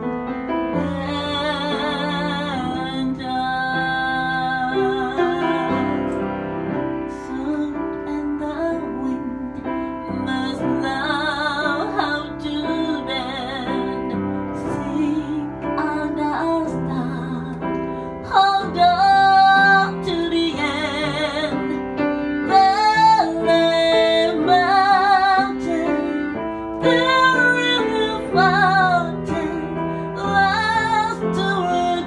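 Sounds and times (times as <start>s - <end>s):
piano accompaniment: 0.0s - 32.0s
woman singing a slow ballad: 0.7s - 32.0s.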